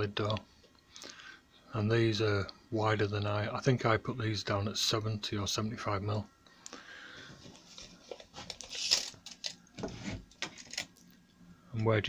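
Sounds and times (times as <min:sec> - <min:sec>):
tape measure scraping hiss: 0:08.4 - 0:09.2.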